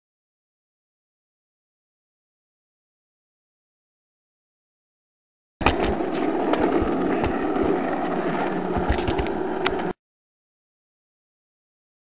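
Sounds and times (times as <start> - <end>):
go-kart wheels rumbling on asphalt: 5.6 - 9.9.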